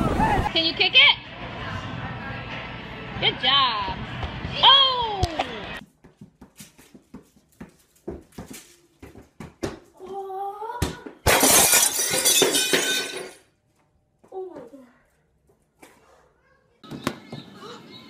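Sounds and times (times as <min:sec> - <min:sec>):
glass shattering: 0:11.3 - 0:13.4.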